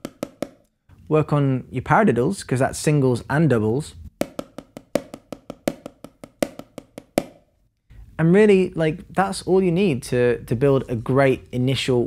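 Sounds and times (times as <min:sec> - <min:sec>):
drumsticks tapping practice pad: 0:00.0 - 0:00.7, 0:04.2 - 0:07.5.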